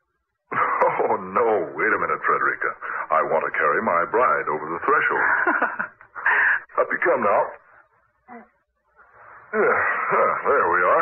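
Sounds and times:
actor speaking on old radio: 1.0s - 5.5s, 6.7s - 7.8s, 10.0s - 11.0s.

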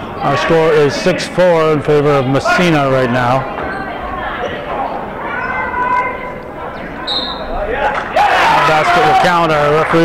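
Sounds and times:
voices and shouts in gym: 0.0s - 10.0s
high shoe squeak: 6.8s - 7.5s.

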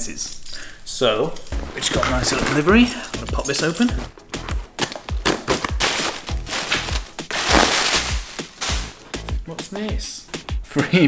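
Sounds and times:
background music with beat: 1.6s - 11.0s
cardboard and tape ripping: 4.7s - 9.0s.

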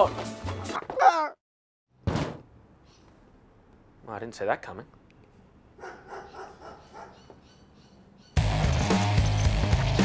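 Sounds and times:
dog barking: 5.8s - 7.4s.

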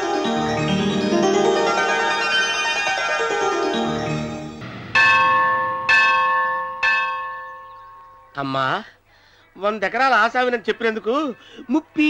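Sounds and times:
temple bell ringing: 0.0s - 8.5s.

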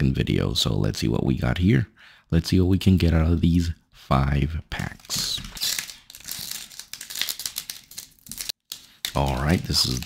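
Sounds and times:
plastic wrapper crinkling and tearing: 4.8s - 10.0s.

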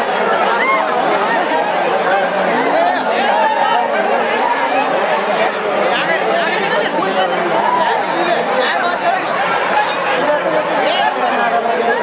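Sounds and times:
crowd chattering and shouting: 0.0s - 12.0s.

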